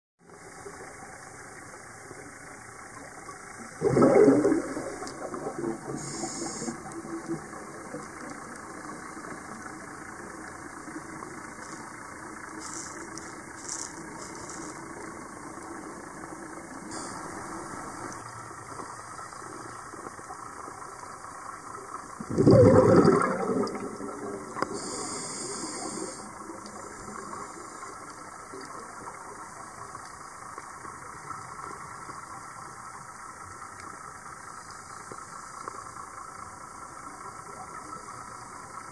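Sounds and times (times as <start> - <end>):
faint hum: 0.2 - 38.9
scuba exhaust bubbles gurgling: 0.2 - 38.9
underwater hiss: 3.6 - 20.4, 21.0 - 32.0.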